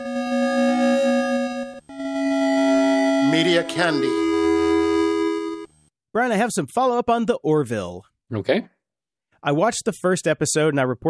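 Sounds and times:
held synthesizer chord: 0:00.0 - 0:05.7.

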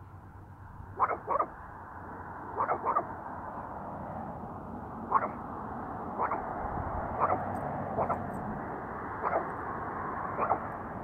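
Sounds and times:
small dog barking: 0:01.0 - 0:01.5, 0:02.6 - 0:03.1, 0:05.1 - 0:05.4, 0:06.2 - 0:06.5, 0:07.2 - 0:08.3, 0:09.2 - 0:09.6, 0:10.4 - 0:10.7.

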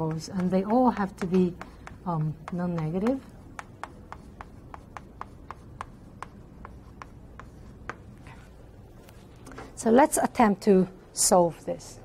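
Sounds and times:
writing on a board: 0:00.0 - 0:08.5.

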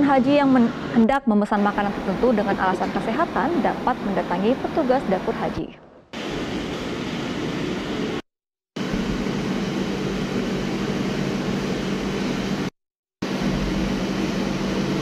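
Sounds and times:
rushing fan noise: 0:00.0 - 0:05.6, 0:06.2 - 0:08.2, 0:08.8 - 0:15.0
machine hum: 0:00.0 - 0:08.2, 0:08.8 - 0:15.0.

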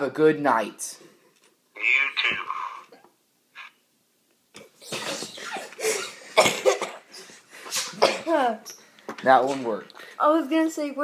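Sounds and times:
boys laughing: 0:04.9 - 0:07.4.

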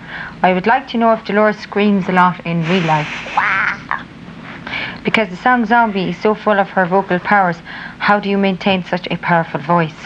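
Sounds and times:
breathing: 0:00.0 - 0:00.4, 0:04.5 - 0:05.0, 0:07.6 - 0:08.0.

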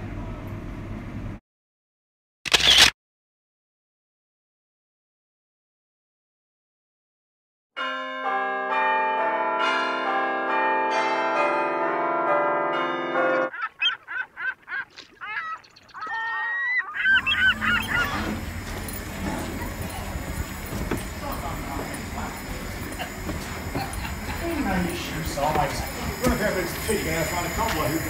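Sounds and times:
tower bells chiming: 0:07.8 - 0:13.5, 0:17.2 - 0:28.0
geese honking: 0:13.5 - 0:19.4
outdoor open-air noise: 0:13.5 - 0:28.0
faint voices: 0:17.2 - 0:28.0.

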